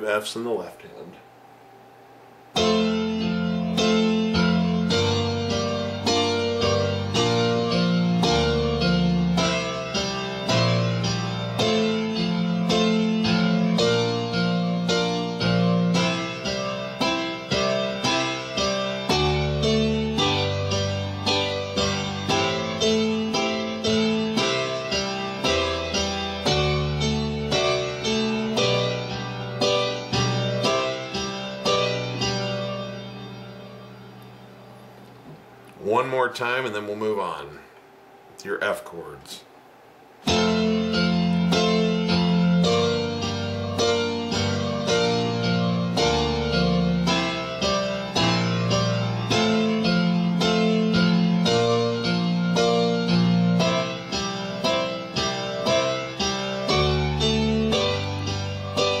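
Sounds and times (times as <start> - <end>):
digital piano playing octave chords: 2.5 - 37.6, 40.2 - 59.0.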